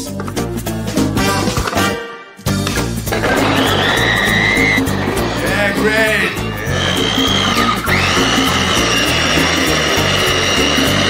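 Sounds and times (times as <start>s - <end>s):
background music: 0.0s - 11.0s
food chopper whining: 3.0s - 11.0s
blades chopping vegetables: 3.1s - 11.0s.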